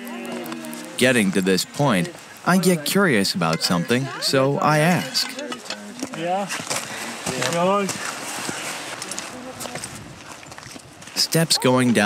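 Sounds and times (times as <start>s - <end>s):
footsteps on rocky trail: 5.1s - 12.0s.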